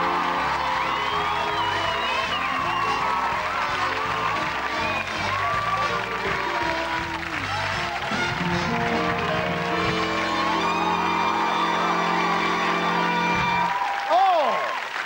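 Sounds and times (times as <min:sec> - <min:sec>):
house band playing: 0:00.0 - 0:13.7
audience applause: 0:00.0 - 0:15.0.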